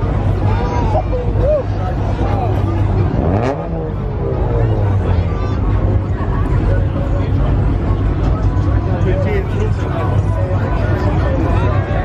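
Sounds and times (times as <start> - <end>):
car engines rumbling: 0.0 - 12.0
engine revving: 2.5 - 6.0.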